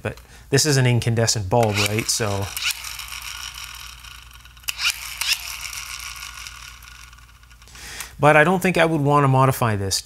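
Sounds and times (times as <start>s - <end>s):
dynamo flashlight whirring: 1.6s - 8.1s.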